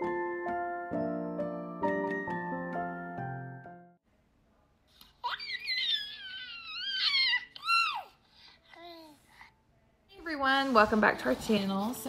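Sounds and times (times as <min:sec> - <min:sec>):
baby squealing: 0:05.2 - 0:08.2.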